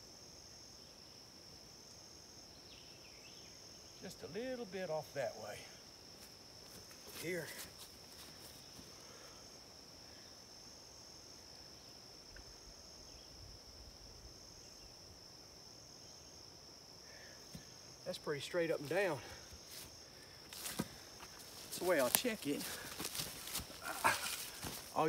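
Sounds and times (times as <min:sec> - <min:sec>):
insects chirring: 0:00.0 - 0:25.0.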